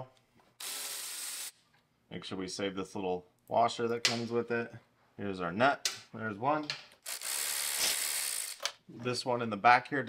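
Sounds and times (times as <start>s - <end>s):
cordless ratchet running: 7.0s - 8.7s.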